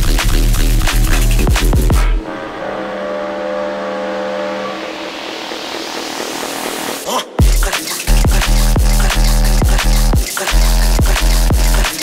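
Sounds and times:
drum and bass beat: 0.0s - 2.3s, 4.8s - 12.0s.

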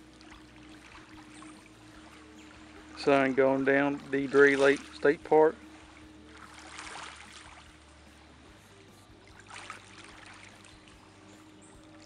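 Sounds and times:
waves lapping at shore: 0.0s - 12.0s.

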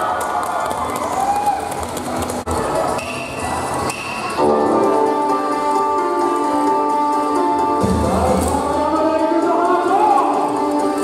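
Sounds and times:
crowd noise: 0.0s - 11.0s
faint dance music: 0.0s - 11.0s.

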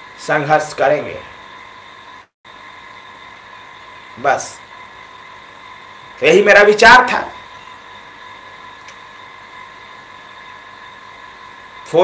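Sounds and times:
faint high whine: 0.0s - 12.0s
room tone hiss: 0.0s - 12.0s.

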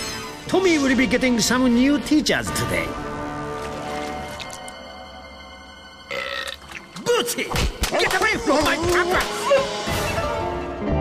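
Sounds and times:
soft background music: 0.0s - 11.0s
cartoon burp with falling pitch: 6.1s - 6.9s.

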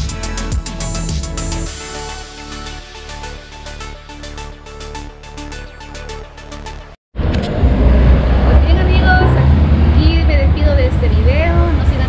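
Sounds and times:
electronic music with steady beat: 0.0s - 7.0s
street noise with deep rumble: 7.2s - 12.0s
people's voices: 8.5s - 12.0s.

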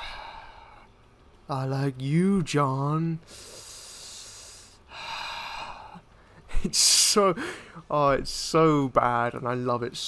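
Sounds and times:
man breathing heavily: 0.0s - 1.0s, 3.2s - 6.6s, 7.4s - 7.9s.

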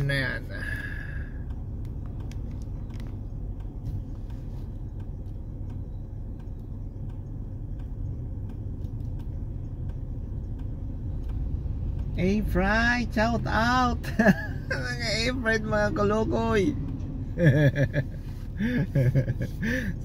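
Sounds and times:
car idling from inside: 0.0s - 20.0s.

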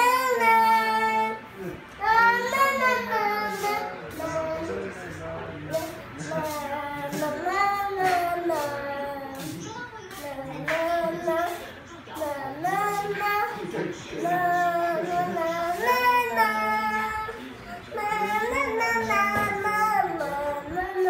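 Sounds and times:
girl singing: 0.0s - 1.4s, 2.0s - 4.6s, 6.2s - 13.6s, 14.2s - 21.0s.

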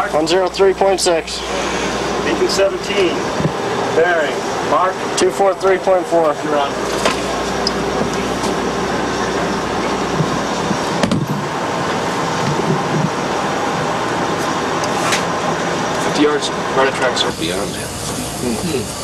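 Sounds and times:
low hum: 0.0s - 19.0s
ventilation and machinery rushing: 0.0s - 19.0s.

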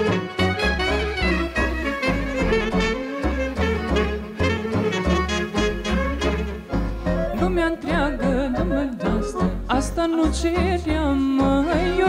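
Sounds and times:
folk song with ornamented melody: 0.0s - 12.0s.

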